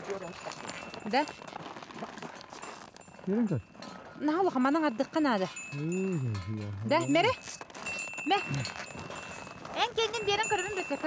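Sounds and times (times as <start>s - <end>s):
small bell ringing: 0.0s - 11.0s.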